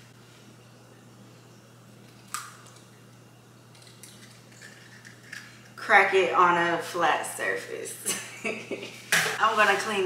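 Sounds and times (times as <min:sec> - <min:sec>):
egg shell cracking: 0:02.0 - 0:05.8.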